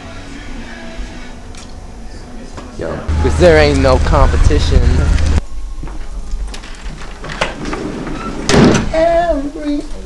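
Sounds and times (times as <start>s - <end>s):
thump: 8.5s - 8.9s.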